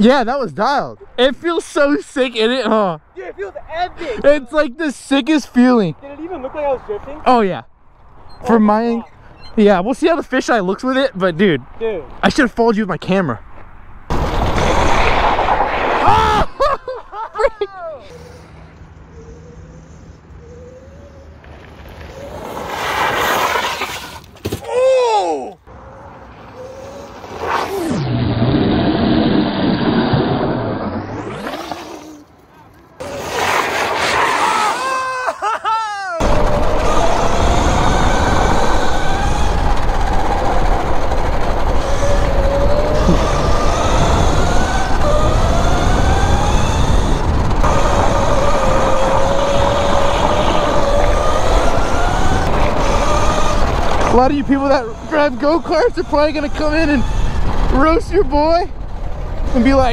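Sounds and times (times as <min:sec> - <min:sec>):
wind buffeting: 0:00.0 - 0:17.4, 0:36.2 - 0:59.9
tyre scrub hiss on asphalt: 0:33.1 - 0:34.6
electric motor whine: 0:36.2 - 0:59.9.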